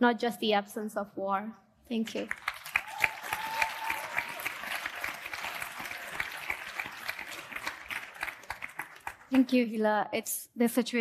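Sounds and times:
audience applauding: 2.2 - 9.6.

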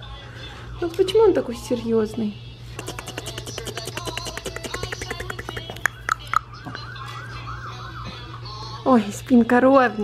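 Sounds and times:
toy fire truck electronic siren: 5.7 - 8.7.

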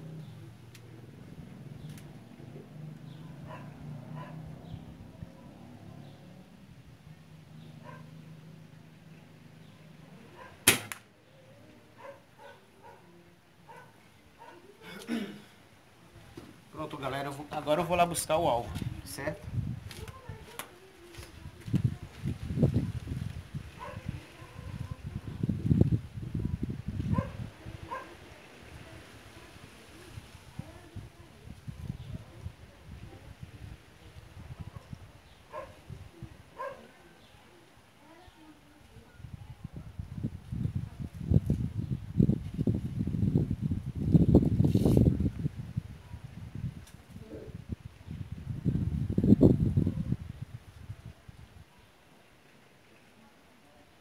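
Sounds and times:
dog barking: 3.3 - 4.5, 7.8 - 8.1, 10.4 - 10.6, 12.0 - 13.1, 13.7 - 14.7, 23.8 - 25.0, 27.1 - 28.2, 35.5 - 35.8, 36.6 - 37.0
air rifle shot: 10.6 - 11.1
wind buffeting microphone: 18.1 - 36.8, 39.0 - 51.7.

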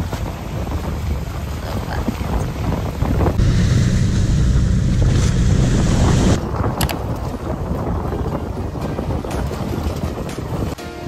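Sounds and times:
boat engine hum: 0.0 - 6.6
water rushing past hull: 0.0 - 10.8
wind buffeting microphone: 0.0 - 10.8.

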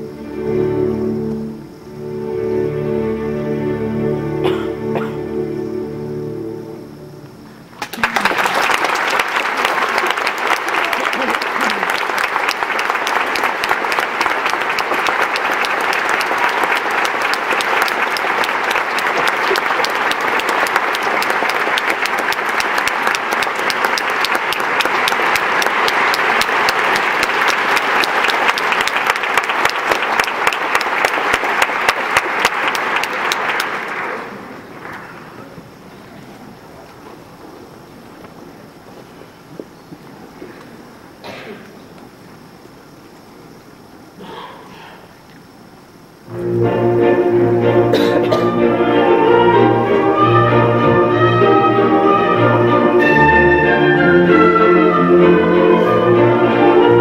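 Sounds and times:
audience applauding: 7.7 - 35.9.

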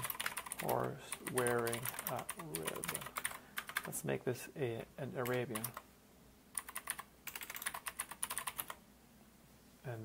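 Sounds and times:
typing on keyboard: 0.0 - 3.9, 5.2 - 5.8, 6.6 - 8.8.

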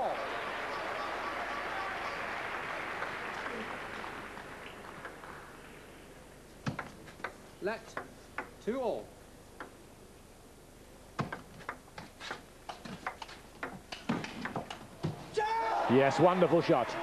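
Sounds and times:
table tennis ball clicking: 6.7 - 8.5, 9.6 - 9.8.

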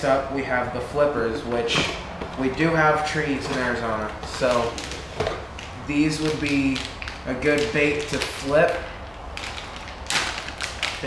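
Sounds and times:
plastic packet crinkling: 2.5 - 11.0.

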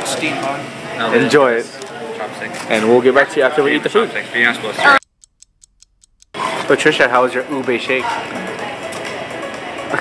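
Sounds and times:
rapid clock ticking: 5.0 - 6.4.

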